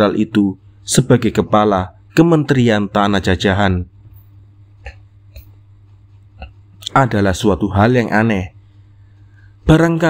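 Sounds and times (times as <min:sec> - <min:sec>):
low steady hum: 0:00.0 - 0:10.0
faint mouth noises: 0:06.2 - 0:06.9.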